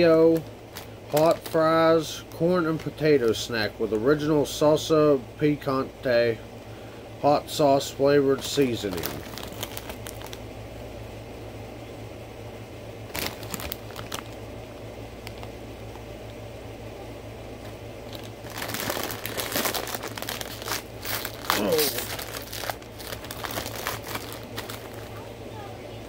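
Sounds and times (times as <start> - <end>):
snack bag crinkling: 0.0 - 1.8, 8.4 - 10.4, 13.1 - 14.5, 15.1 - 16.0, 18.1 - 25.2.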